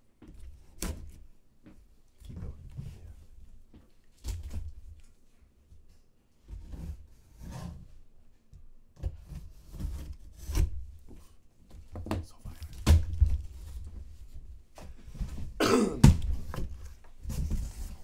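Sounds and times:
cardboard box knocks and thumps: 0:14.8 - 0:18.0.

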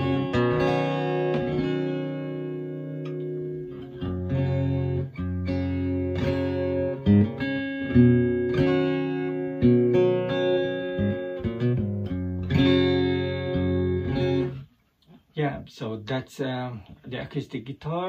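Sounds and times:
electro-acoustic guitar chords: 0:00.0 - 0:14.7
man talking: 0:15.3 - 0:18.0.

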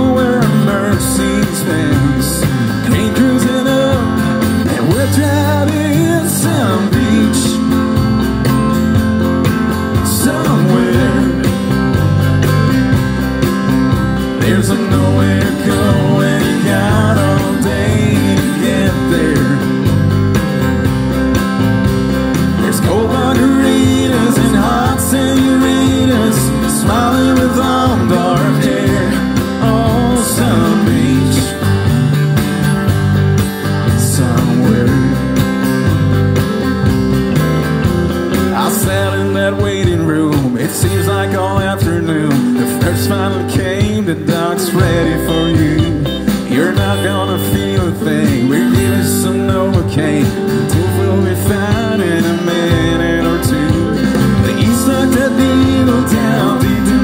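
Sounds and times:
bass: 0:00.0 - 0:57.0
country band guitar: 0:00.0 - 0:57.0
steady drum beat: 0:00.0 - 0:57.0.

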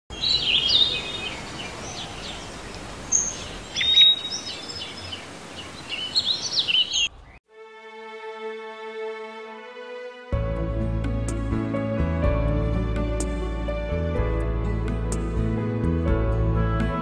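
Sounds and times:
small birds chirping and singing: 0:00.1 - 0:07.4
steady outdoor hiss: 0:00.1 - 0:09.9.

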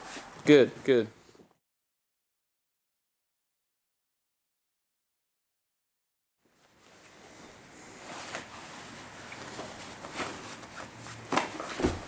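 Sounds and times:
bodies rustling on a mat: 0:00.0 - 0:00.4, 0:06.5 - 0:12.0.

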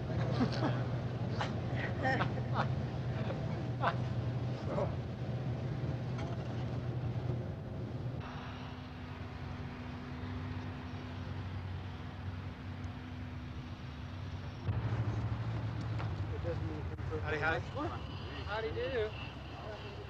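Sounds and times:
low background hum: 0:00.0 - 0:20.0
faint steady tone: 0:16.9 - 0:20.0.

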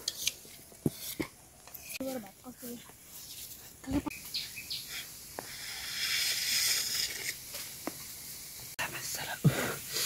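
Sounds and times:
rustling hiss: 0:00.0 - 0:10.0.

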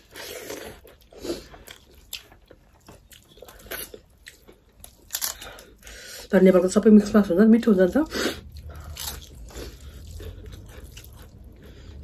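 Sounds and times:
crunchy bites and chewing: 0:00.0 - 0:05.9, 0:08.4 - 0:12.0.

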